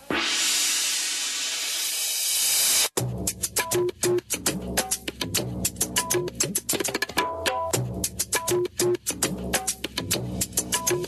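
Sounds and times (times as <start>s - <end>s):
hissing noise sweep: 0.0s - 3.0s.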